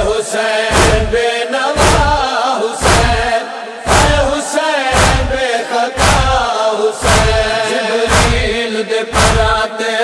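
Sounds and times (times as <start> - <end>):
chorus chanting: 0.0 - 10.0
deep thumping beat: 0.7 - 1.2, 1.8 - 2.2, 2.8 - 3.3, 3.9 - 4.3, 4.9 - 5.4, 6.0 - 6.4, 7.0 - 9.6.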